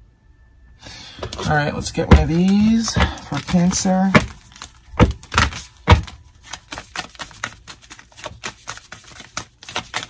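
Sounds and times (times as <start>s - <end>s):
cards being shuffled: 1.2s - 10.0s.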